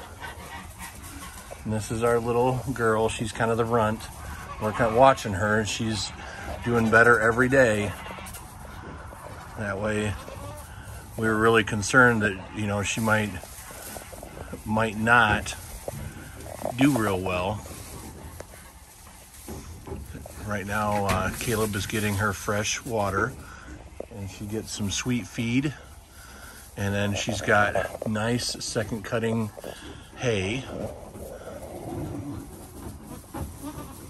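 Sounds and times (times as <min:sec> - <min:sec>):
goats rustling in straw: 0:00.0 - 0:34.0.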